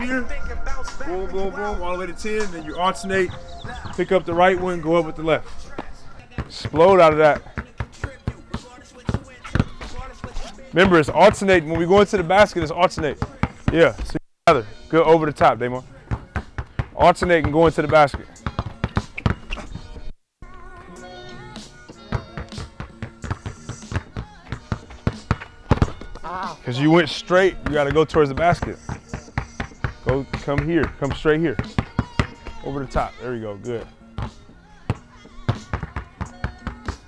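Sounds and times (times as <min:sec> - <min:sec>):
background music with held tones: 0:00.0 - 0:37.0
basketballs bouncing on court: 0:03.2 - 0:04.9, 0:06.2 - 0:14.0, 0:16.0 - 0:19.8, 0:22.0 - 0:26.3, 0:27.5 - 0:33.0, 0:34.2 - 0:37.0.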